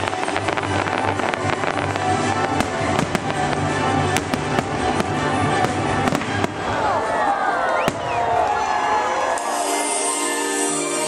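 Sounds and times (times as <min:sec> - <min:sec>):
fireworks bangs and crackling: 0:00.0 - 0:07.2, 0:07.8 - 0:08.6
orchestral music: 0:00.0 - 0:11.0.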